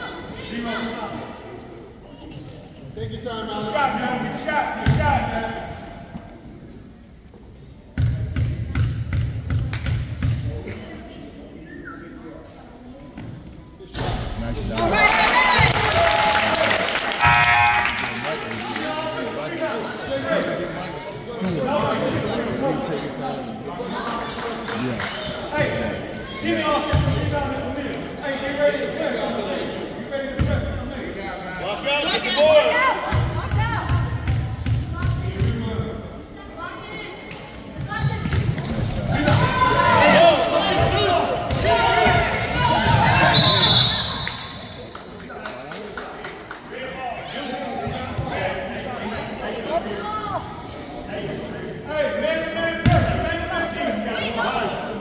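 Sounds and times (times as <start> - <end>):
people shouting in a gym: 37.9 - 44.6.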